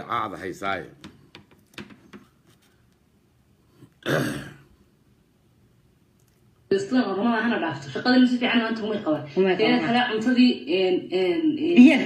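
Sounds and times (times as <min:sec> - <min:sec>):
man clearing his throat: 0:04.0 - 0:04.7.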